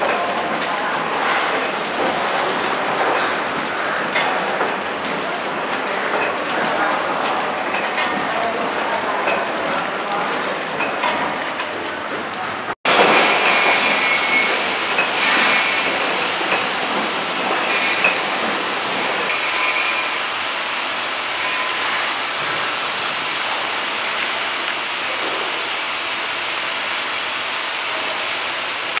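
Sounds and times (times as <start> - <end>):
packing machine running: 0.0 - 29.0.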